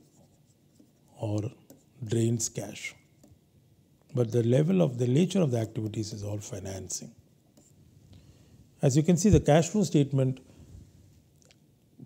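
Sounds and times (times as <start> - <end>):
stylus tapping and scratching: 0.0 - 1.9, 7.5 - 7.8.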